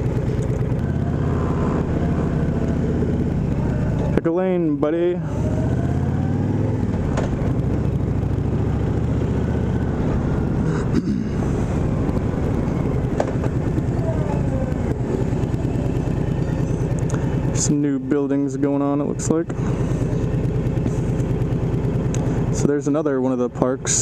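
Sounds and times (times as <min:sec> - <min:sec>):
motorcycle engine running: 0:00.0 - 0:24.0.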